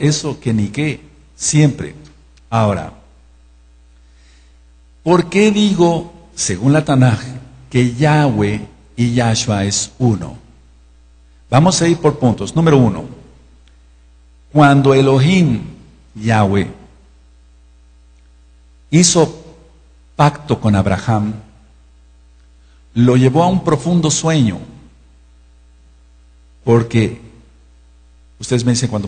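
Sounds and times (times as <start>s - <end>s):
man speaking: 0.0s - 3.2s, 5.0s - 10.6s, 11.5s - 13.4s, 14.5s - 17.0s, 18.9s - 19.6s, 20.2s - 21.6s, 23.0s - 24.9s, 26.6s - 27.5s, 28.4s - 29.0s
mains hum: 0.0s - 29.0s.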